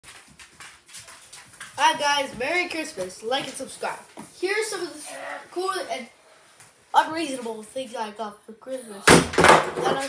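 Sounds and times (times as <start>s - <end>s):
boy speaking: 1.8s - 6.2s, 6.9s - 10.0s.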